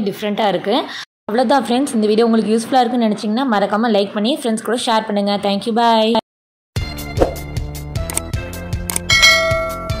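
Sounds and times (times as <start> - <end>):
outro music with steady beat: 6.8 - 10.0
short clicks: 8.0 - 9.1
bell-like ding: 9.1 - 10.0.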